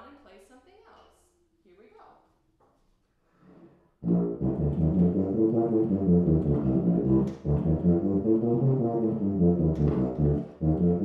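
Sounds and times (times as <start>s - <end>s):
tuba playing short notes: 4.0s - 11.0s.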